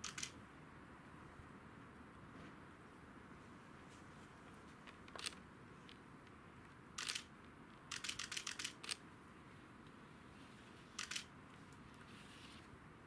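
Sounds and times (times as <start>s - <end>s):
sharp clicks: 0.0s - 0.4s, 7.0s - 7.3s, 7.9s - 9.0s, 11.0s - 11.3s
faint background hiss: 0.0s - 13.0s.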